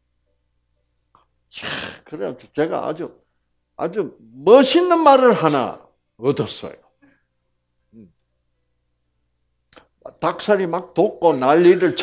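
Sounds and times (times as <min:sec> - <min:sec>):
man sneezing: 0:01.5 - 0:02.1.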